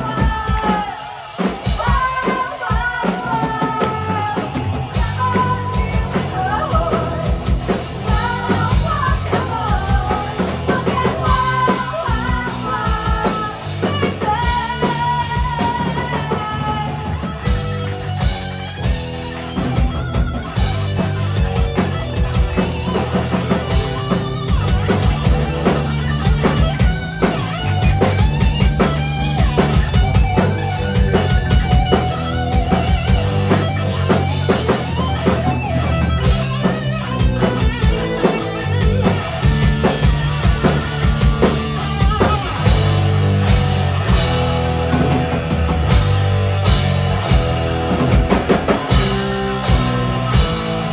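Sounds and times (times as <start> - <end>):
bass guitar: 0.0 - 50.9
distorted electric guitars: 0.0 - 50.9
drum kit beat: 0.0 - 50.9.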